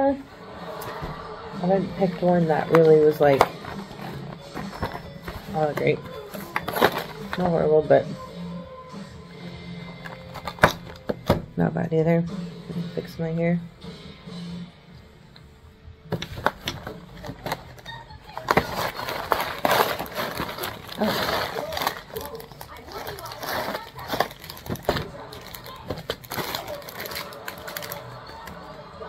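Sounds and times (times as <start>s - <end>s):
plastic packaging crinkling: 2.5s - 7.5s, 10.0s - 11.2s, 16.2s - 28.6s.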